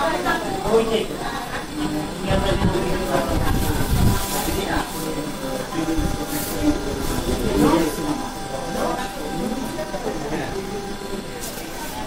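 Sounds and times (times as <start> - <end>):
people talking in a room: 0.0 - 12.0.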